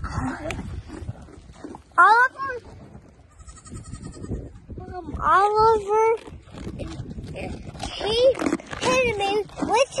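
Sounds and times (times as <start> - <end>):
goat bleating: 3.3 - 4.7.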